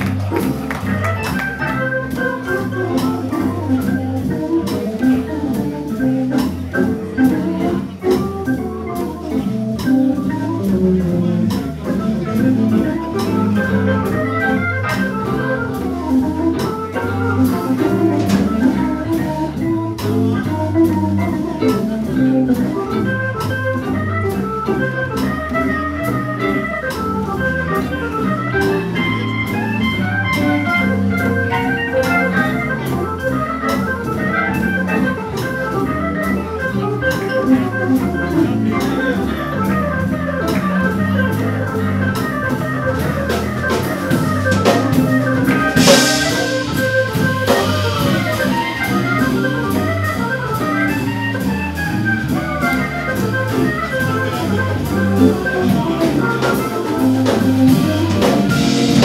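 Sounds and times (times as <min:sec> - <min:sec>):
drums keeping time: 0:00.0 - 0:59.0
organ soloing: 0:00.0 - 0:59.0.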